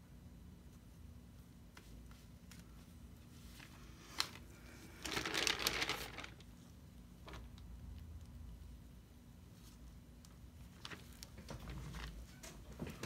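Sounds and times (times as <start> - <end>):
canvas crinkling: 3.4 - 6.5.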